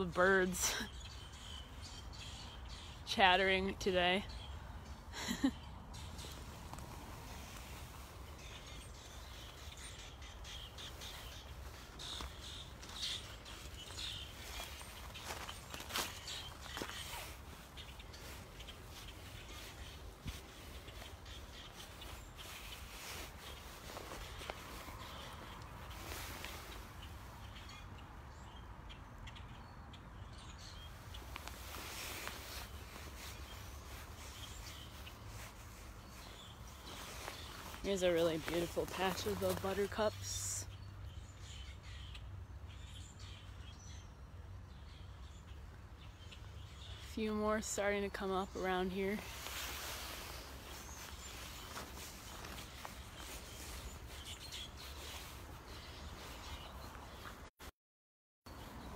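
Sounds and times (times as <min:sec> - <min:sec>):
wild birds chattering: 0:00.0 - 0:57.5.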